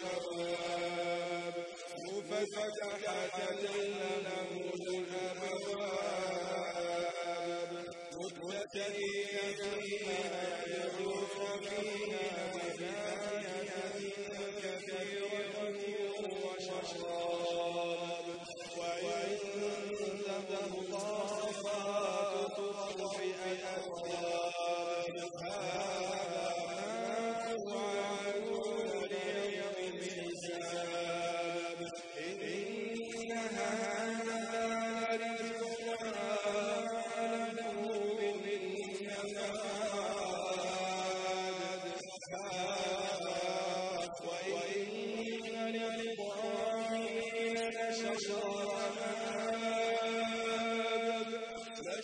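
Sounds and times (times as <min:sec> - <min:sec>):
man chanting melodically: 0:00.0 - 0:52.0.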